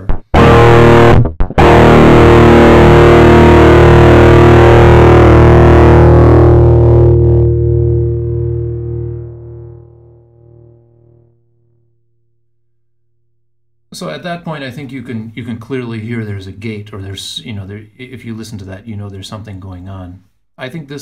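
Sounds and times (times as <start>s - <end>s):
distorted electric guitar: 0.0s - 11.5s.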